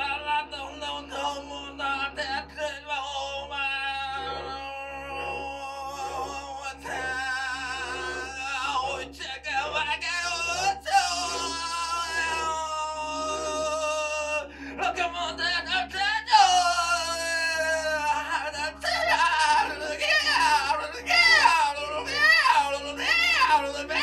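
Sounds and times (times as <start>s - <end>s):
man singing without words: 0.0s - 24.0s.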